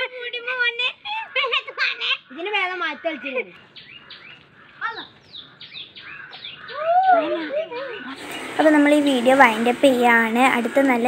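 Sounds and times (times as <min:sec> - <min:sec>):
bird chirping: 0:00.0 - 0:09.6.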